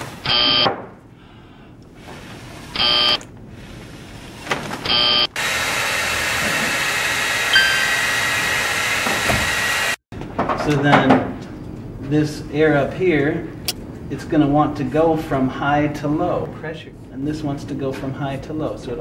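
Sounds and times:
buzzy electronic beeps: 0.3 - 0.6, 2.8 - 3.2, 4.9 - 5.3
hair dryer blowing: 4.9 - 10.0.

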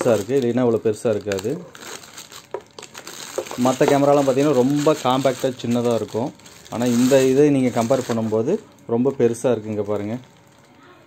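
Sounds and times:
person speaking: 0.0 - 1.7, 3.4 - 11.0
plastic bag crinkling: 0.0 - 11.0.

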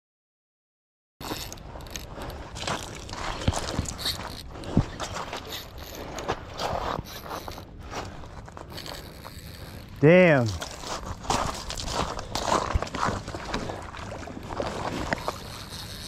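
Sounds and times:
fishing reel cranking clicks: 1.2 - 4.5, 8.7 - 10.7, 15.1 - 16.0.

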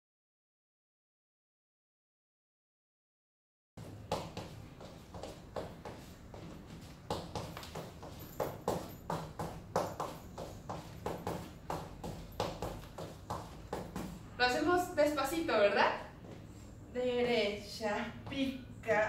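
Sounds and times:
sandals tapping on stone floor: 4.1 - 14.2.

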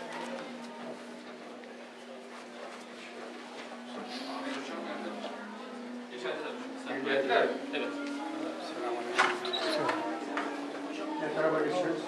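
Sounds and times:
murmur of men's voices: 0.0 - 12.0.

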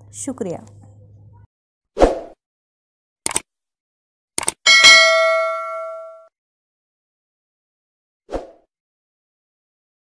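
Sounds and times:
mouse double-click: 3.3 - 3.5, 4.4 - 4.6
notification bell ding: 4.7 - 6.3.

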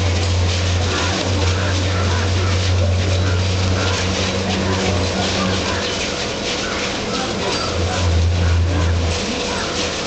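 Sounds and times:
faint voices: 0.0 - 10.0
outdoor background noise: 0.0 - 10.0
steady low hum: 0.0 - 10.0.

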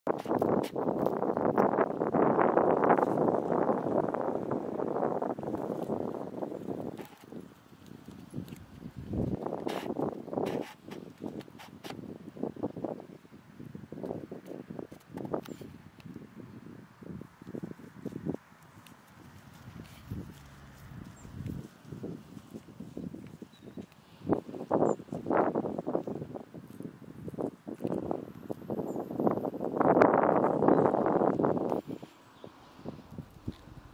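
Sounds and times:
rustling in grass: 2.4 - 12.0, 17.1 - 33.9
sheep grazing tearing grass: 5.4 - 12.0, 17.4 - 28.8, 33.0 - 33.9.

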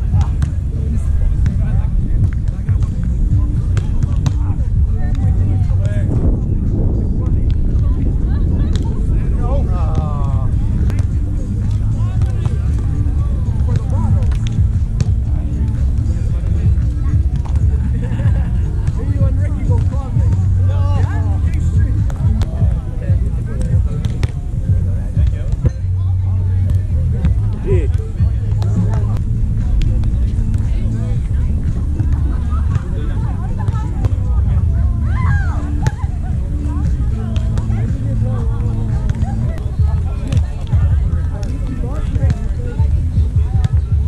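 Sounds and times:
distant indistinct voices: 0.0 - 44.0
wind rumble on microphone: 0.0 - 44.0.

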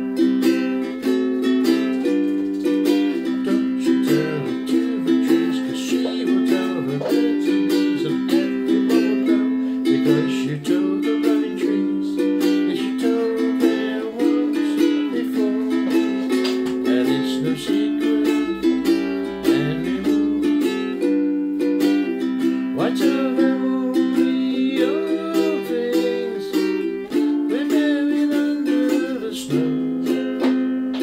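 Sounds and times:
ukulele strumming chords: 0.0 - 31.0.

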